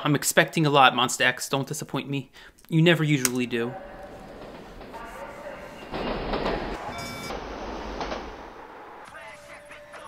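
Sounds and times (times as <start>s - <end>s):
subway train in tunnel: 3.7s - 10.0s
brief high ringing tone: 6.9s - 7.4s.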